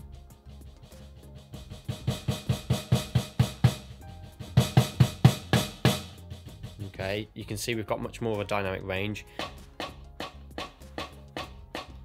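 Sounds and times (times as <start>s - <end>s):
snare drum strokes: 0.4s - 7.0s, 9.4s - 12.0s.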